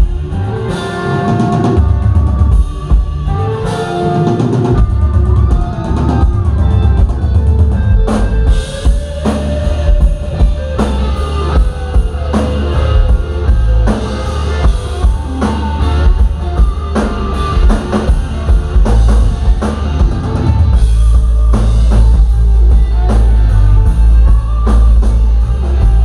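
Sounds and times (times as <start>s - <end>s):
bass guitar: 0.0s - 26.0s
drum kit: 0.0s - 26.0s
electric guitar lead: 0.0s - 26.0s.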